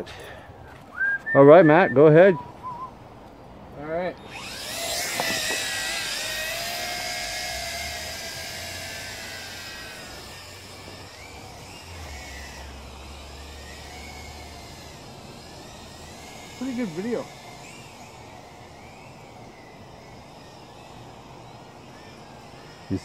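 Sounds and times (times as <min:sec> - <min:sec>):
toy drone propellers buzzing: 0:03.8 - 0:23.0.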